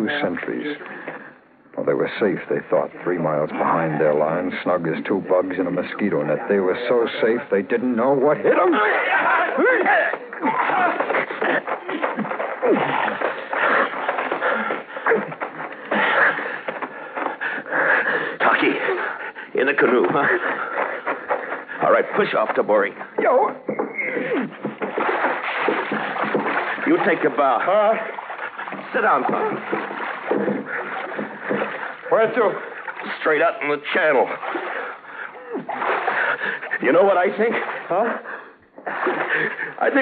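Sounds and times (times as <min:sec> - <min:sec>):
paddles splashing in water: 0:08.5 - 0:40.0
men grunting and gasping: 0:09.3 - 0:22.2, 0:23.0 - 0:26.9, 0:27.9 - 0:33.0, 0:34.4 - 0:36.8, 0:37.6 - 0:39.8
scuffling and knocks: 0:09.4 - 0:17.7, 0:28.0 - 0:33.1.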